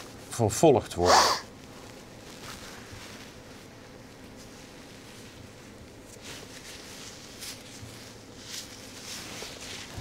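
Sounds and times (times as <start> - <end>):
low room hum: 0.0 - 10.0
soft rustles: 1.5 - 10.0.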